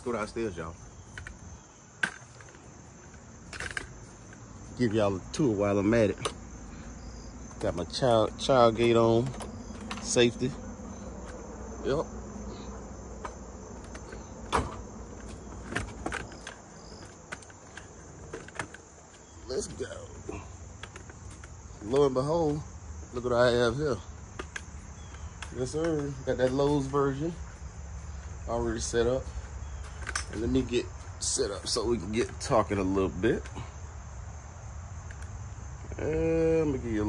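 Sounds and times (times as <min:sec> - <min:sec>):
crickets trilling: 0:00.0 - 0:37.0
insects buzzing: 0:00.0 - 0:37.0.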